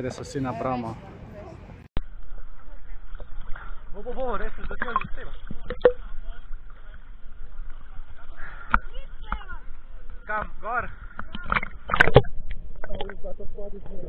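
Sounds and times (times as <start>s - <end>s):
water splashing: 2.1s - 14.0s.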